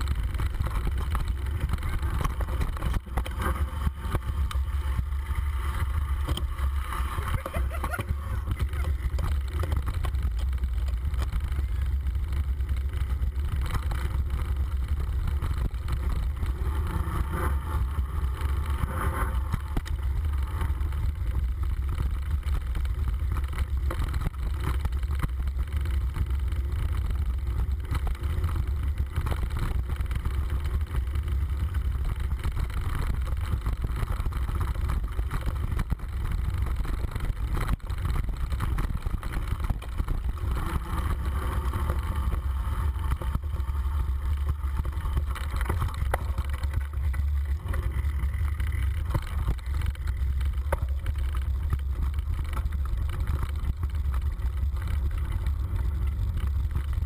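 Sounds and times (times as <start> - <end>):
bike rattling over bumps: 0.0 - 57.0
wind rumble on microphone: 0.0 - 57.0.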